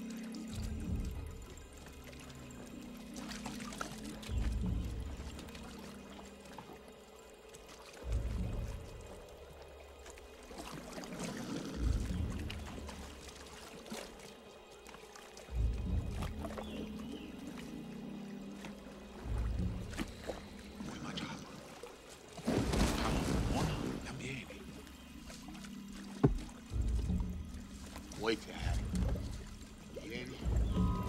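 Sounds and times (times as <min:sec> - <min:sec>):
tense film score: 0:00.0 - 0:31.0
water splashing around rafts: 0:00.0 - 0:31.0.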